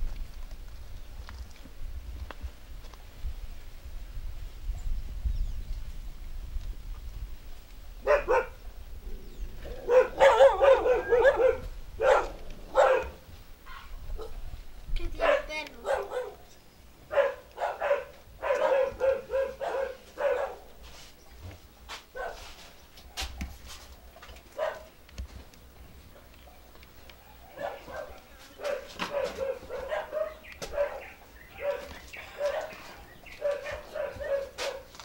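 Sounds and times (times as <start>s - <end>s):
dog barking: 8.0s - 8.6s, 9.7s - 14.4s, 15.2s - 20.8s, 22.1s - 23.6s, 24.5s - 24.9s, 26.1s - 35.0s.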